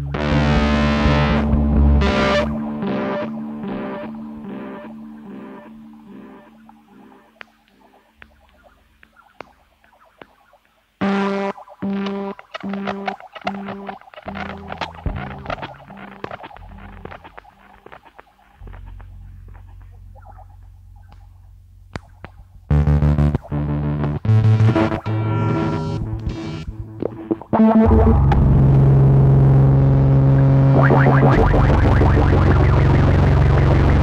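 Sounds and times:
low drone: 0:27.9 - 0:34.0.

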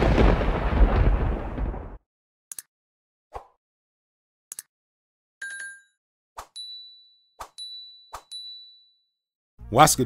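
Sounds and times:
bright bell-like ding: 0:06.6 - 0:09.0.

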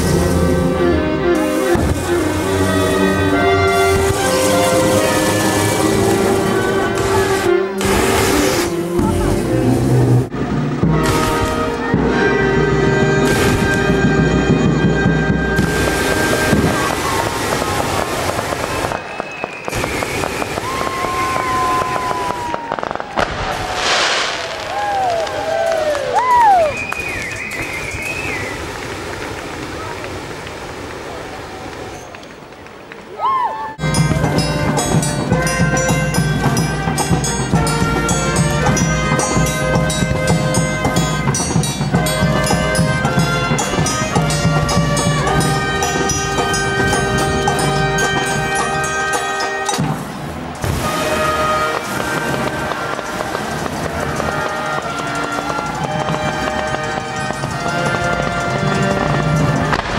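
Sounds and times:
rough noise of burning gas: 0:00.0 - 0:11.7, 0:15.5 - 0:26.6
flame organ pipe notes: 0:00.0 - 0:29.2, 0:33.8 - 0:59.9.

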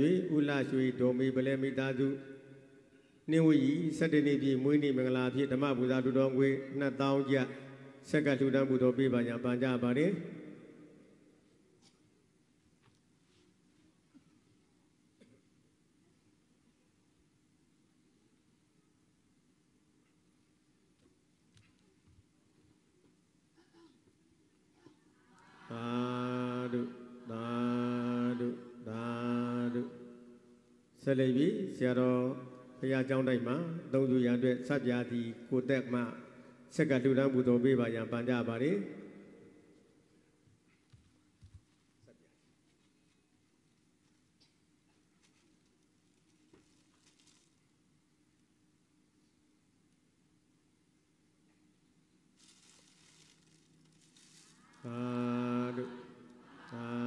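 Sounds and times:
man chanting: 0:00.0 - 0:02.4, 0:03.3 - 0:10.4, 0:25.6 - 0:30.4, 0:31.0 - 0:39.3, 0:54.6 - 0:57.0
faint rustling hiss: 0:06.6 - 0:25.8, 0:30.0 - 0:55.2
man chanting on one note: 0:25.6 - 0:30.4, 0:54.7 - 0:57.0.

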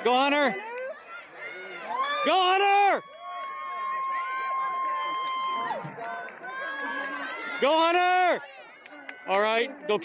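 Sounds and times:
crowd murmur: 0:02.9 - 0:10.0.

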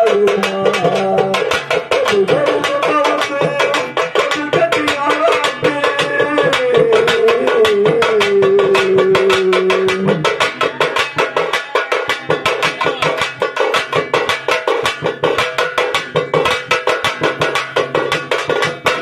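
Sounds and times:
barrel drum: 0:00.0 - 0:19.0
frame drum: 0:00.0 - 0:19.0.

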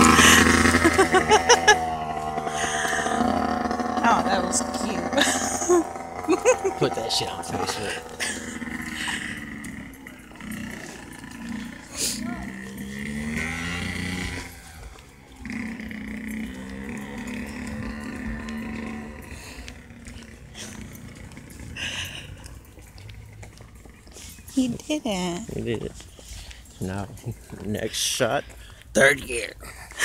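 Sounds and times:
dirt bike engine revving: 0:00.0 - 0:25.8.

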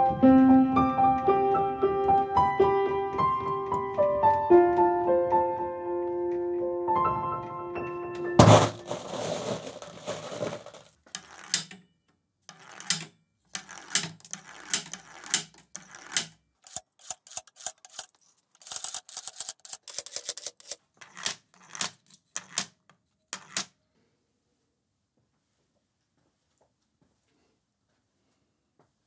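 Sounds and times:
steel marbles clicking: 0:09.0 - 0:11.8, 0:12.5 - 0:22.7, 0:23.3 - 0:23.7.

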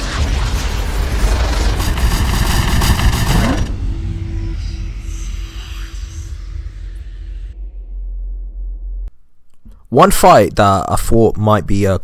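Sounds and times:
dense crashing rush: 0:00.0 - 0:04.3
short rising sweep: 0:00.0 - 0:09.1.

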